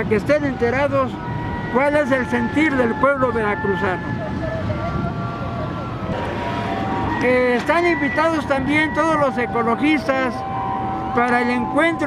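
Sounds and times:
low rumble of city traffic: 0.0 - 12.0
faint steady tones: 0.5 - 12.0.

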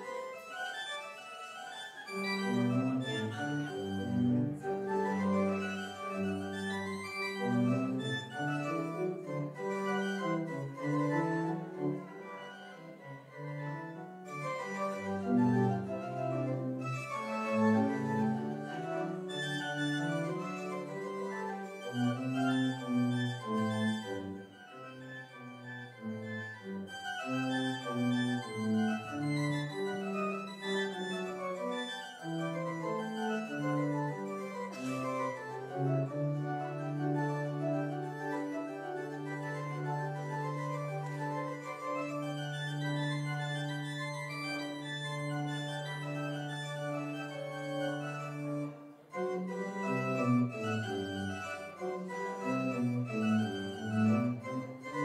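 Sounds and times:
organ playing held chords: 38.9 - 48.7.

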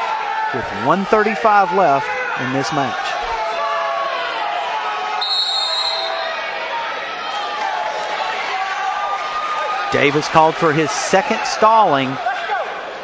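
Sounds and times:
crowd yelling: 0.0 - 13.0
referee's whistle: 5.2 - 6.4.

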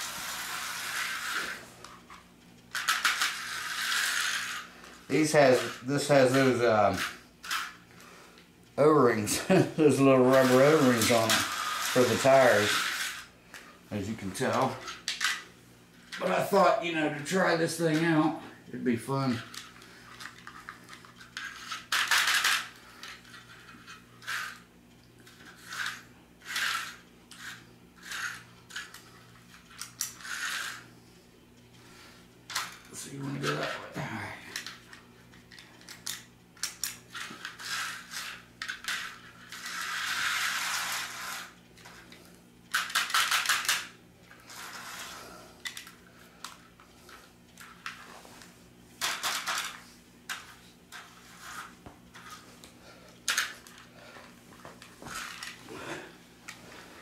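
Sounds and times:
slot cars whirring and rattling: 0.0 - 1.6, 2.8 - 7.8, 10.2 - 13.3, 37.6 - 41.6
steady low hum: 0.0 - 57.0.

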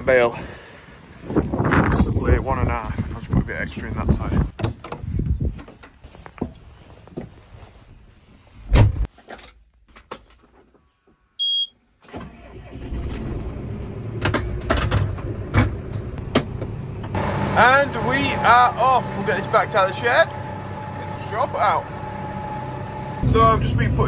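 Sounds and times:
short electronic beep: 11.4 - 11.7
diesel engine starting and running: 12.0 - 24.0.

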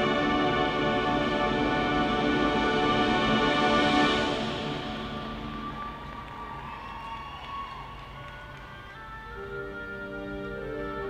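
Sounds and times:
marching band playing held chords: 0.0 - 6.8.

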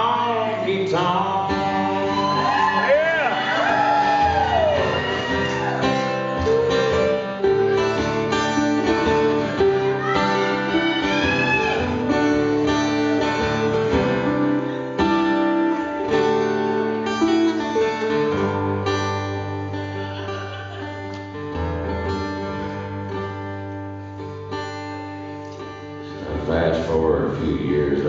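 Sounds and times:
country band instrumental: 0.0 - 28.0.

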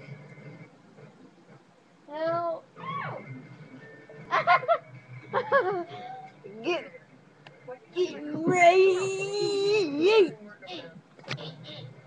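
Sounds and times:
person giggling: 4.3 - 6.2.

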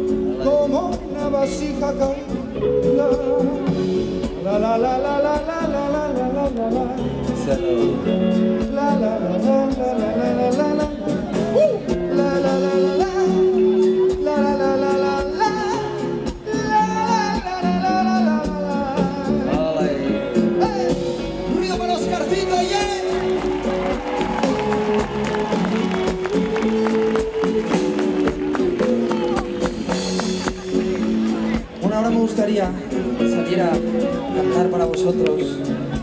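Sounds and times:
person singing improvised melody: 0.0 - 25.0, 25.6 - 36.0
electric bass: 0.0 - 36.0
percussion: 0.0 - 36.0.

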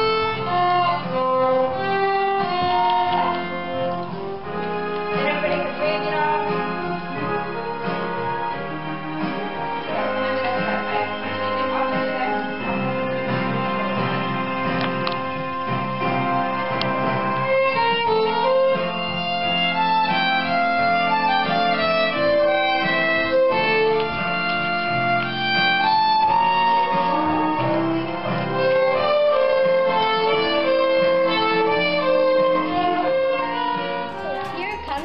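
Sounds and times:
violin duet: 0.0 - 15.7, 16.8 - 35.0.

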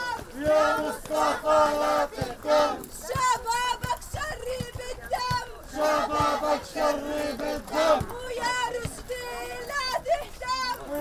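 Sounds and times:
crowd chanting in unison: 0.0 - 3.4, 5.6 - 9.6.

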